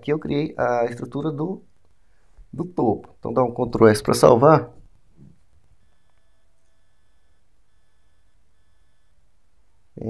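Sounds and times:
low steady hum: 0.0 - 10.0
short electronic beeps: 5.8 - 9.3.

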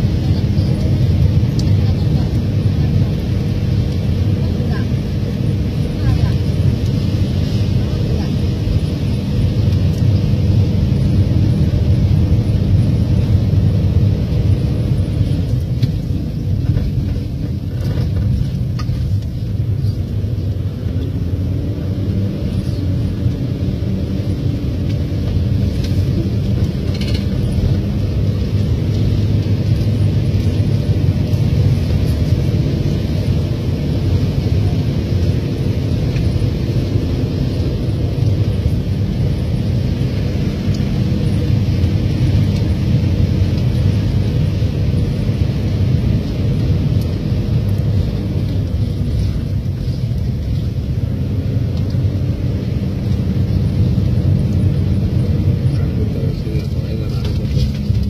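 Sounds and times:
road noise: 0.0 - 58.0
vehicle engine rumble: 0.0 - 58.0.

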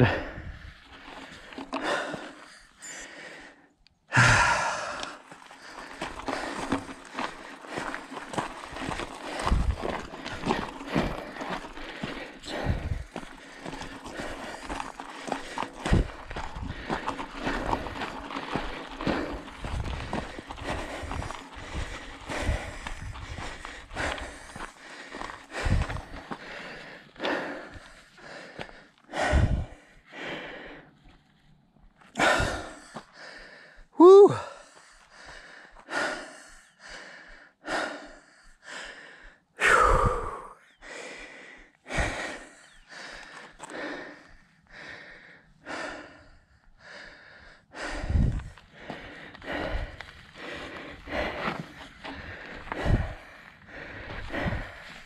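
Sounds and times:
rider breathing hard: 0.0 - 55.0
bike rattling over rocks: 0.8 - 2.8, 5.0 - 28.2
tyres crunching on gravel: 4.2 - 29.0, 48.3 - 55.0.

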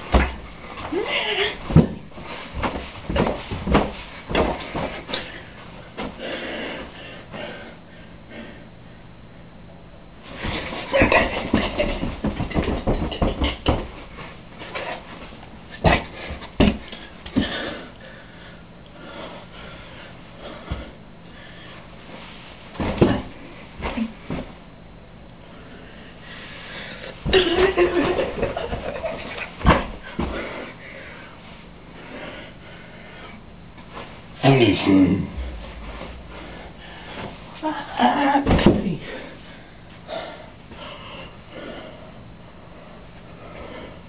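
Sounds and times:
man grunting: 34.5 - 36.4
hard thumps: 35.3 - 37.6.

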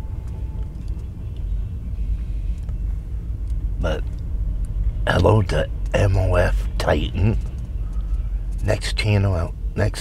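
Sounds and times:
car idling rumble: 0.0 - 10.0.

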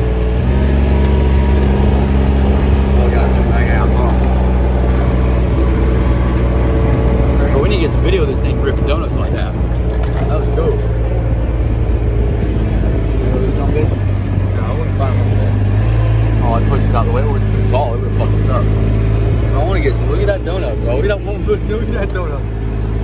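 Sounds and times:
diesel engine running: 0.0 - 23.0.

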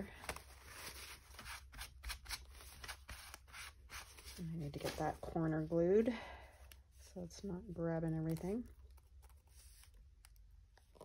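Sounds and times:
paper rustling and scraping: 0.1 - 5.4.

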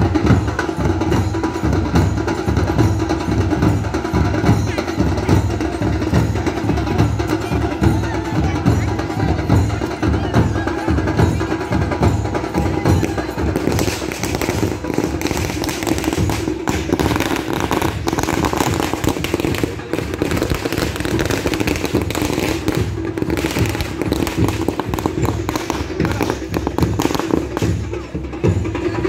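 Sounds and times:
firecrackers popping: 12.7 - 28.4.

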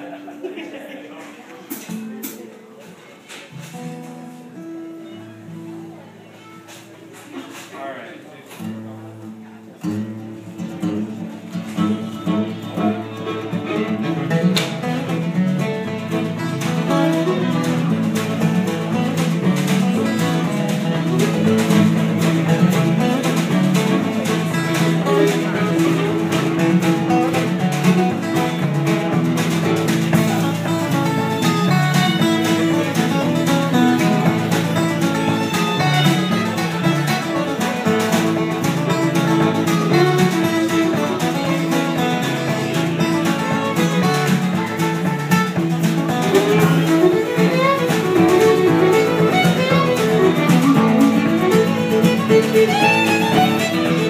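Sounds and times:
strummed acoustic guitars: 0.0 - 7.9, 8.5 - 54.0
fiddle: 3.4 - 8.0, 8.6 - 54.0
drum kit: 14.4 - 54.0.

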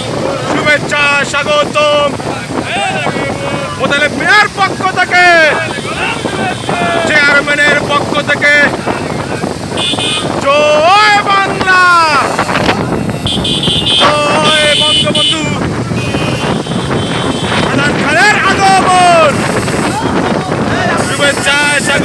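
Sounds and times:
motorcycles running: 0.0 - 22.0
wind buffeting microphone: 0.0 - 22.0
man shouting: 0.4 - 9.3, 10.2 - 12.4, 13.9 - 15.6, 17.6 - 22.0
horns honking: 5.2 - 7.8, 8.8 - 10.5, 11.6 - 22.0.

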